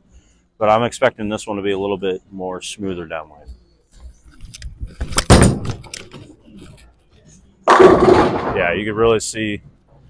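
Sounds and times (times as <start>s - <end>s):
bowling ball thudding on lane: 7.7s - 8.7s
bowling pins clattering: 7.7s - 8.8s.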